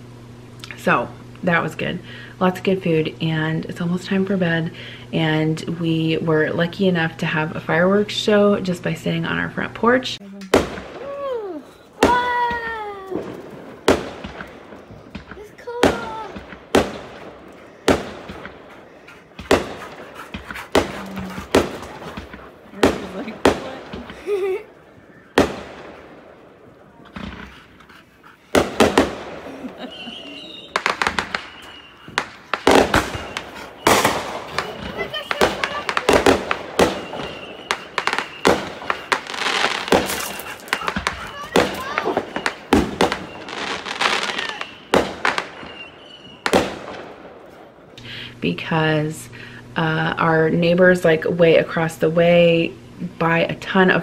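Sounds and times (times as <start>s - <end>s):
fireworks crackling and popping: 0.0s - 54.0s
distant fireworks bangs: 0.4s - 54.0s.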